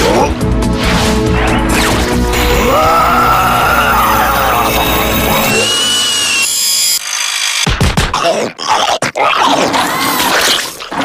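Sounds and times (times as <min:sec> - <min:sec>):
cartoon machine whirring: 0:03.3 - 0:07.8.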